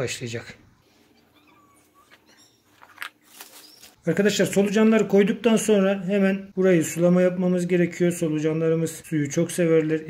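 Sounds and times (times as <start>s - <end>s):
soil rustling: 2.1s - 4.0s.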